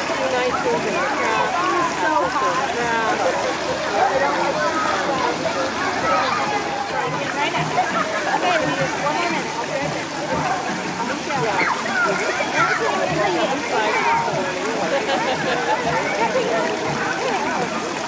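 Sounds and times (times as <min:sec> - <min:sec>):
crowd talking and shouting: 0:00.0 - 0:18.0
water splashing and sloshing: 0:00.0 - 0:18.0.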